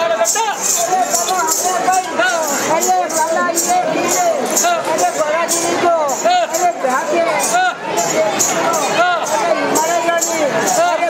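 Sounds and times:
jingling metal percussion: 0:00.0 - 0:11.0.

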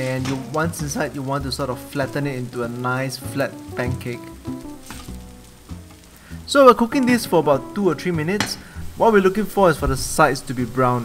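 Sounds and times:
background music with held notes: 0:00.0 - 0:11.0
potato frying in butter: 0:00.0 - 0:11.0.

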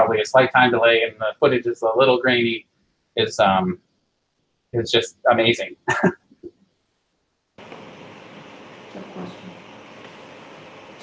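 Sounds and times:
steady background hiss: 0:00.0 - 0:06.2, 0:07.6 - 0:11.0.

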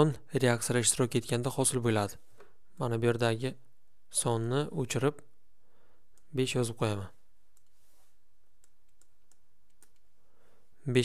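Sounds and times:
steady low hiss: 0:00.0 - 0:11.0.

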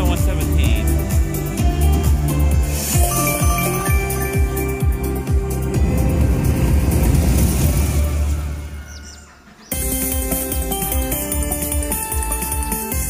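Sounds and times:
electronic chime melody: 0:02.8 - 0:05.8
low rumbling whoosh: 0:05.5 - 0:08.7.

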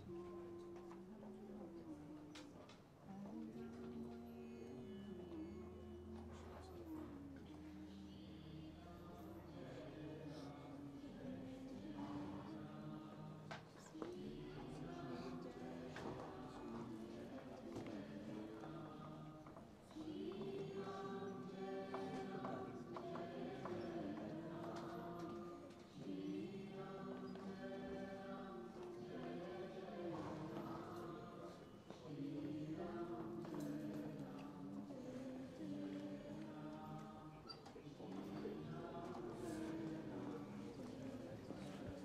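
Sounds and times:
group of voices singing slowly: 0:00.0 - 0:42.0.

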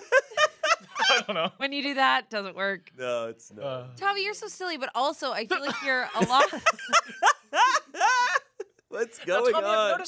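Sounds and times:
high-pitched laughter: 0:00.0 - 0:01.5, 0:05.7 - 0:10.0.

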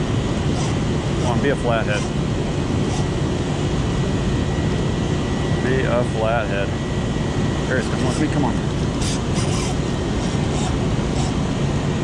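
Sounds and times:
scratchy rod and reel handling: 0:00.5 - 0:02.1, 0:02.8 - 0:03.1, 0:07.8 - 0:11.4.

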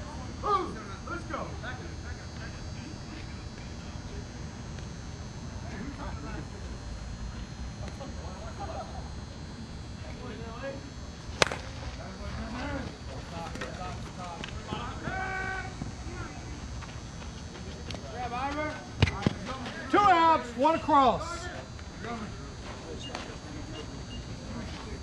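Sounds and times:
bat cracking ball: 0:11.3 - 0:11.7
players calling out: 0:11.4 - 0:24.8.

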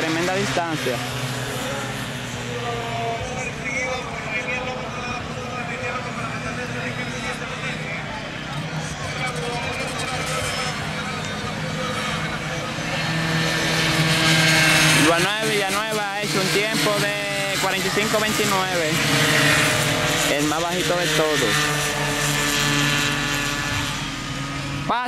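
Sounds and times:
racing motorcycle engines: 0:00.0 - 0:25.0.

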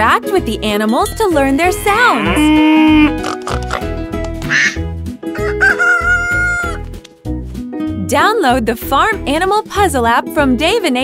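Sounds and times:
cartoon duck quack: 0:04.5 - 0:04.8
rooster crowing: 0:05.3 - 0:06.8.

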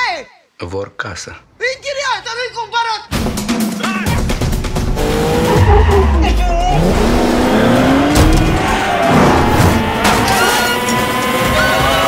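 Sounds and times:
dramatic trailer music: 0:03.1 - 0:12.0
car engine revving: 0:04.5 - 0:12.0
tyres squealing: 0:05.2 - 0:12.0.

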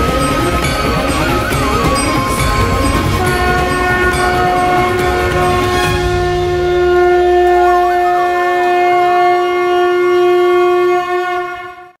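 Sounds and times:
wavering melody line: 0:00.0 - 0:10.0
wind instrument long note: 0:00.0 - 0:12.0.

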